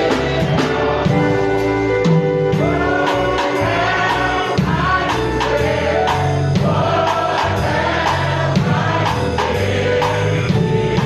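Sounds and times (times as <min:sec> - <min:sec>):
bass and drums beat: 0:00.0 - 0:11.0
group singing gospel: 0:00.0 - 0:11.0.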